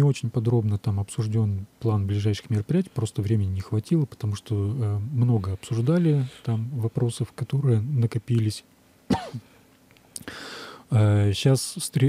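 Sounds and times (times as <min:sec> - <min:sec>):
man speaking: 0:00.0 - 0:08.6, 0:10.9 - 0:12.0
man clearing throat: 0:09.1 - 0:09.5.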